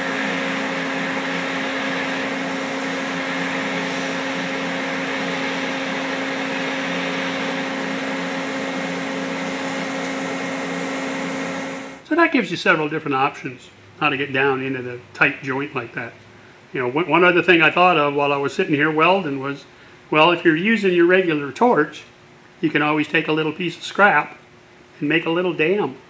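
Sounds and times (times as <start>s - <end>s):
welding arc humming and hissing: 0.0s - 12.0s.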